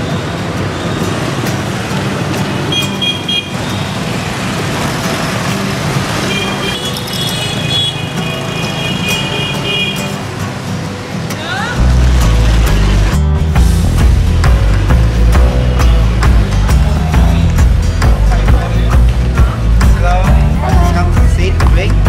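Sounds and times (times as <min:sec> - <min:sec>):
motorbike traffic: 0:00.0 - 0:22.0
music playing: 0:00.0 - 0:22.0.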